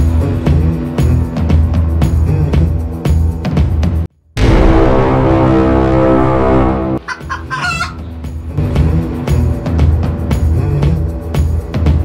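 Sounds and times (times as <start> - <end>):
background music with a beat: 0.0 - 4.8, 7.0 - 12.0
high-pitched comic animal calls: 7.0 - 8.0.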